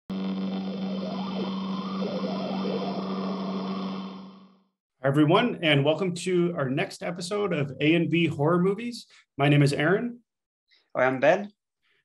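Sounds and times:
static hiss: 0.1s - 4.6s
electrical hum: 0.1s - 4.7s
faint warbling tones: 0.1s - 4.7s.

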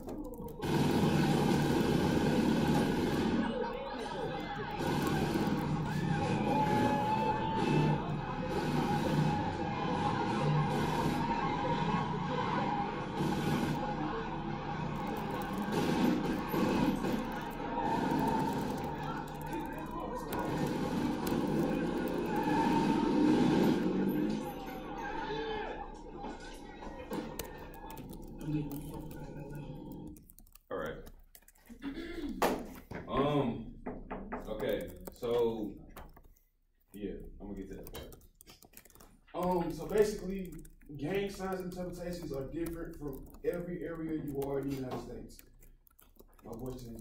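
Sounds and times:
film soundtrack through tv speakers: 0.0s - 47.0s.

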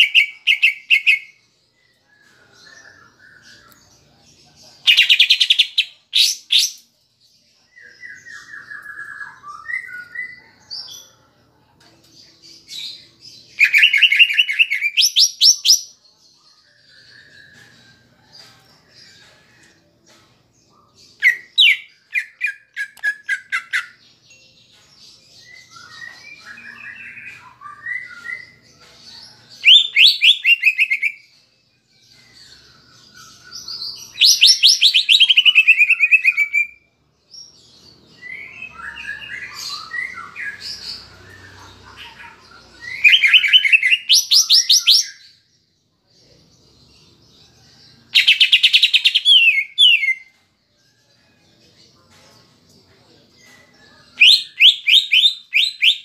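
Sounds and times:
bird singing: 20.6s - 56.0s.

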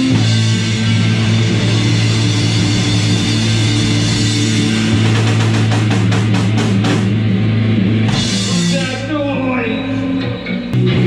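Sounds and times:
electric guitars holding loud chord: 0.0s - 11.0s.

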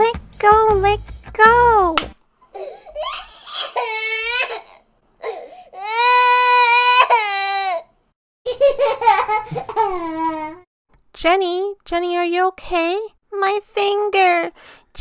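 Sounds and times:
child crying in pain: 2.6s - 7.9s.

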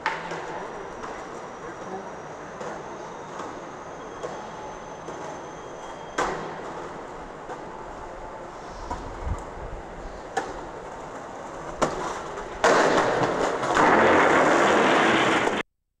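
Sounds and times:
skateboard clacks: 0.0s - 1.4s, 10.3s - 15.6s
skateboard wheels rolling: 0.0s - 15.6s
skateboard grinding on concrete: 10.0s - 15.6s.

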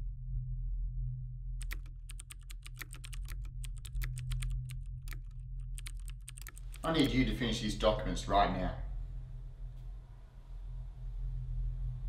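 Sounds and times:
steady low hum: 0.0s - 12.0s
laptop keyboard typing: 1.6s - 7.2s.

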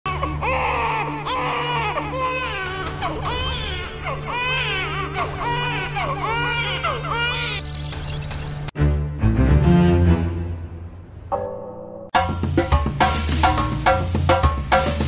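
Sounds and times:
baby crying: 0.1s - 7.6s
low droning music: 0.1s - 14.1s.

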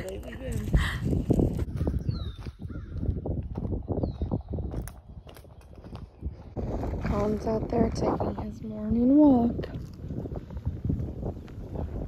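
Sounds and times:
wind buffeting microphone: 0.0s - 12.0s
bird calling: 2.0s - 3.0s.

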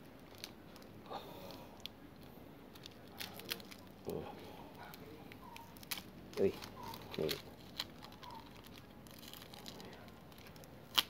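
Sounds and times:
wrapping crinkling and rustling: 0.0s - 11.0s.

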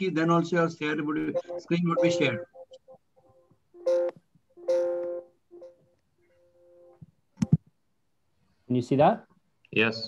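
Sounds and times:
dual electronic tones: 1.2s - 7.0s.

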